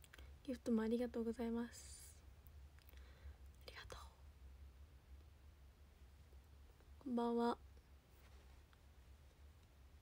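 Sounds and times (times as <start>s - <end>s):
low steady hum: 0.0s - 10.0s
faint whisper: 3.2s - 4.4s.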